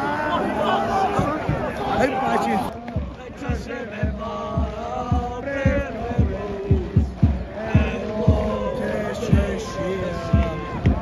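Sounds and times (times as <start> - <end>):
crowd shouting: 0.0 - 11.0
crowd singing a chant: 0.0 - 11.0
bass drum beating: 2.9 - 11.0.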